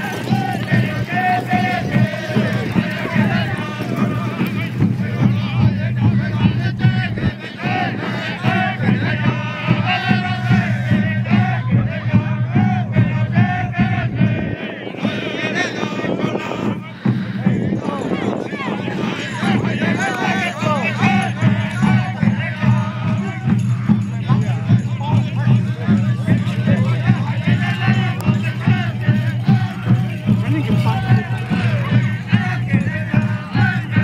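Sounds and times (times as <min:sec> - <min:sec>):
crowd voices: 0:00.0 - 0:34.0
voices singing together: 0:00.0 - 0:34.0.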